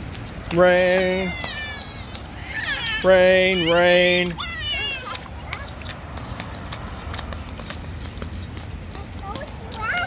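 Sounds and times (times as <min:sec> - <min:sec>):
small feet splashing in puddle: 0:00.0 - 0:10.0.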